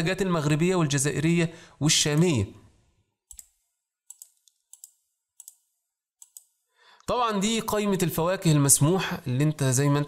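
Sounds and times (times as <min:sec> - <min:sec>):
faint computer mouse clicks: 0:03.3 - 0:03.5, 0:04.1 - 0:05.6, 0:06.2 - 0:06.5.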